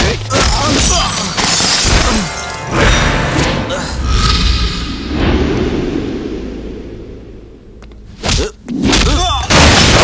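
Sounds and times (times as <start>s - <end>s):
low rumbling boom: 4.6s - 8.0s.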